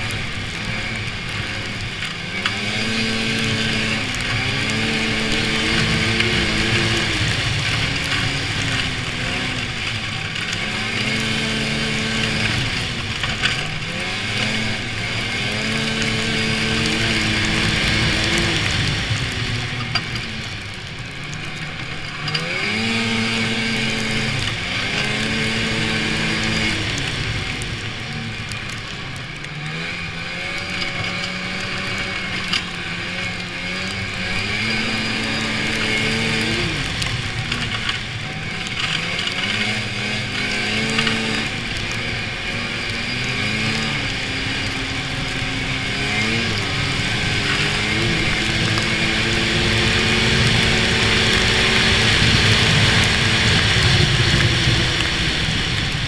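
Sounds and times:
rushing noise of moving sled: 0.0s - 56.0s
snowmobile engine running: 0.0s - 56.0s.

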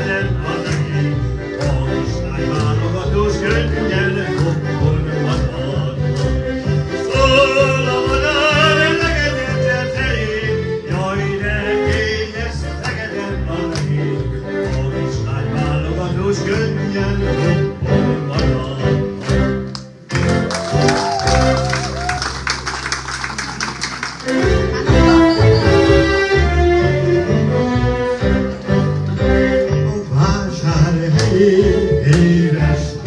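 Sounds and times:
man singing into a microphone: 0.0s - 6.2s, 6.9s - 19.2s, 29.6s - 33.0s
audience clapping: 1.6s - 6.5s, 12.8s - 14.9s, 19.1s - 25.2s.

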